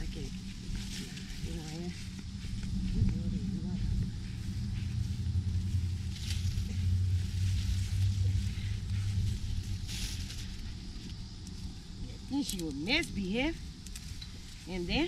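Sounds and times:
leaves and twigs rustling: 0:00.0 - 0:15.0
low engine hum: 0:00.0 - 0:15.0.

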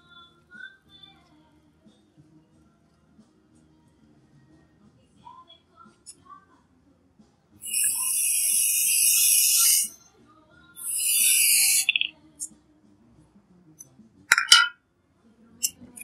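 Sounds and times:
aerosol can spraying: 0:07.6 - 0:09.9, 0:10.8 - 0:12.0.

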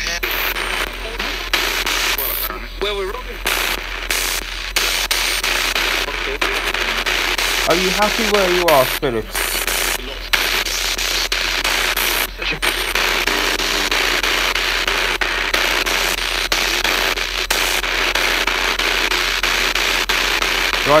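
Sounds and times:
radio static hiss: 0:00.0 - 0:21.0
snatches of radio voices: 0:00.0 - 0:21.0.

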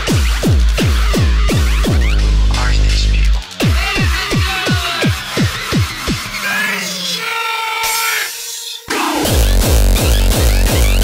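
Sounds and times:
heavy pulsing bass: 0:00.0 - 0:06.5, 0:08.9 - 0:11.0.

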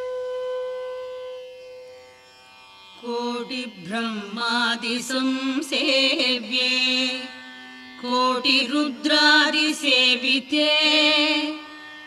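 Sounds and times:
long held note: 0:00.0 - 0:01.9.

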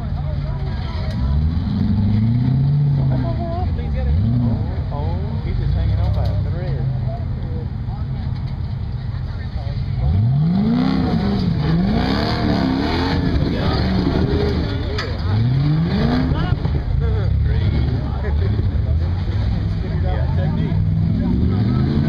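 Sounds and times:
buggy engine revving: 0:00.0 - 0:22.0.

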